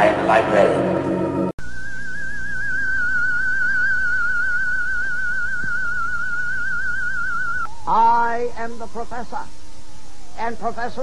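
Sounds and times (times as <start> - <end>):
eerie theremin-like tone: 1.6 - 10.6.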